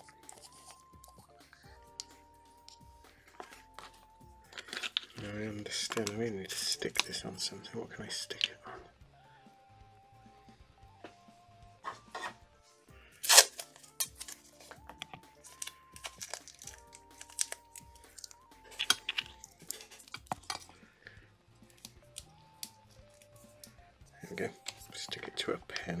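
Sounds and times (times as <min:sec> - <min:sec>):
quiet background music: 0:00.0 - 0:26.0
small objects clicking and knocking: 0:02.0 - 0:07.2, 0:13.2 - 0:20.9.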